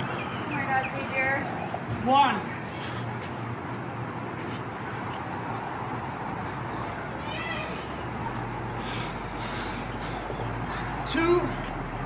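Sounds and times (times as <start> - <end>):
high-pitched vocal cry: 7.2 - 8.0.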